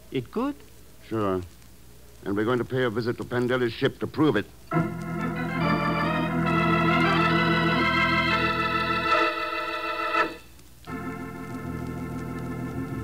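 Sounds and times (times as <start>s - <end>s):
organ chords: 4.7s - 13.0s.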